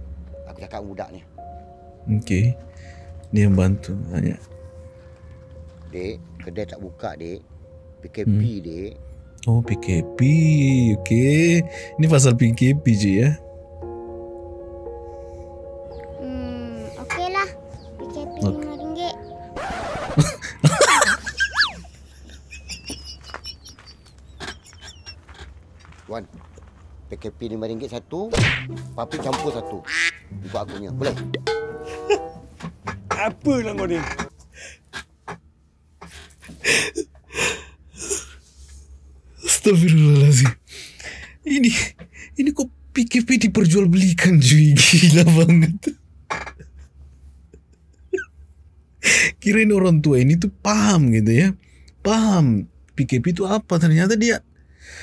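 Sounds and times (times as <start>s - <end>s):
man laughing loudly: 19.8s - 25.4s, 29.9s - 32.4s.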